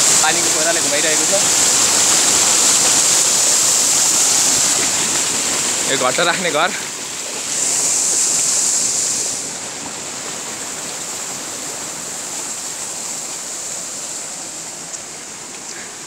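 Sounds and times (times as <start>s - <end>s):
flowing water rushing: 0.0s - 16.0s.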